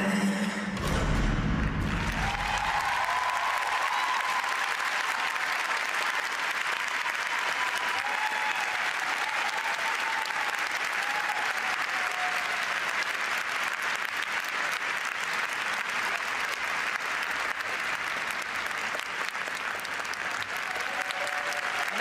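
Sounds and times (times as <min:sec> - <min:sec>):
audience applauding: 0:01.6 - 0:22.0.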